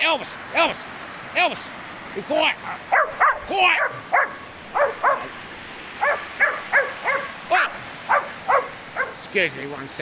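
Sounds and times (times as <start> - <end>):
small dog yapping: 2.7 - 5.3, 6.0 - 7.4, 8.1 - 9.2.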